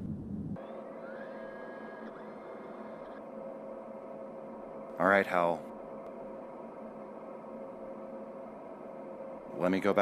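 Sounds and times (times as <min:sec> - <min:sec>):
deep rumble: 0:00.0 - 0:00.6
electronic hum and hiss: 0:00.0 - 0:10.0.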